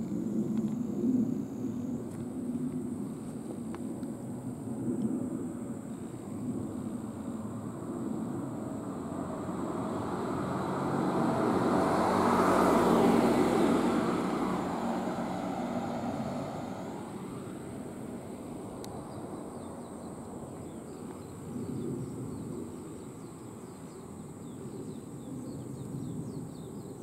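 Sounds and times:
vehicle passing by: 7.5s - 18.8s.

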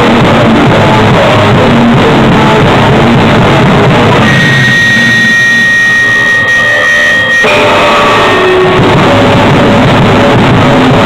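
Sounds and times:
held high tone: 4.2s - 9.5s.

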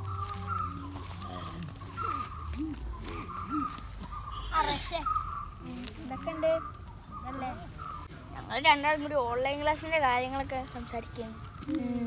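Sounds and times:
children talking quietly: 0.0s - 12.0s.

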